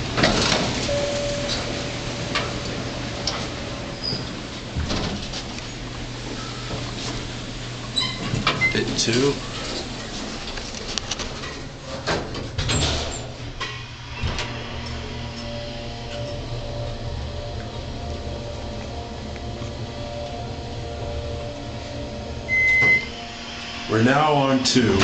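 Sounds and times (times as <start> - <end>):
elevator door sliding shut: 0.0 - 25.0
elevator motor hum: 0.0 - 25.0
short high beep: 22.5 - 23.2.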